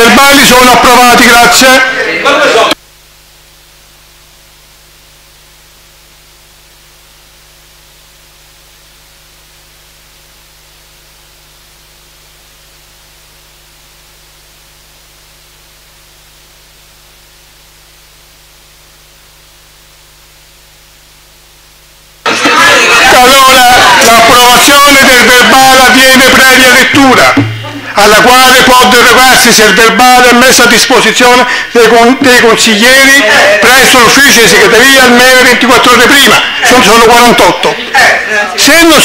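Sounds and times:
electrical hum with hiss: 0:02.6 - 0:22.4.

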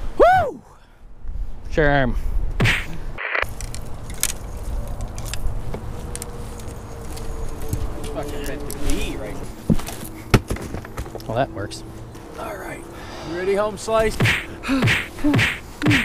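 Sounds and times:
fishing gear handling noise: 0:03.5 - 0:09.1
sharp knocks: 0:14.1 - 0:16.0.

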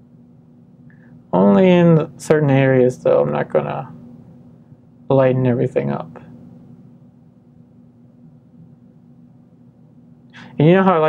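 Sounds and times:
faint low hum: 0:00.0 - 0:11.0
soft background hiss: 0:00.0 - 0:11.0.

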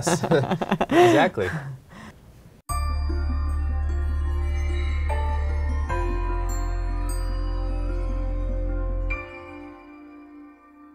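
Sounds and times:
high chiming notes: 0:02.7 - 0:10.9
soft new-age music: 0:02.7 - 0:10.9.

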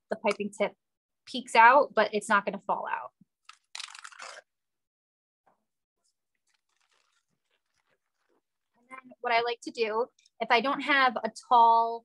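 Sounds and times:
plastic piping bag crinkle: 0:03.5 - 0:04.4, 0:06.3 - 0:08.7.

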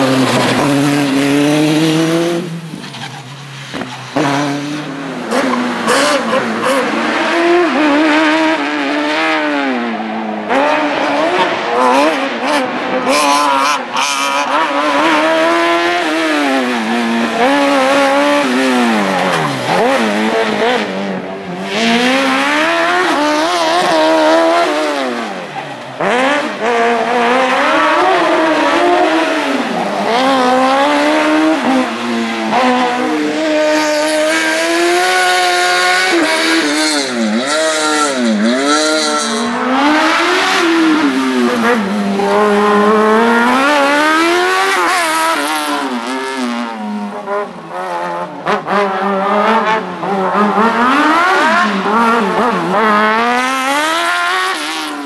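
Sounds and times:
racing car engine revving: 0:00.0 - 0:55.0.

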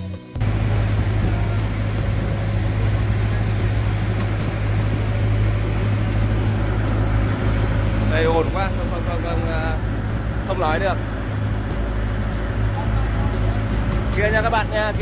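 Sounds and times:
boat engine running: 0:00.4 - 0:15.0.

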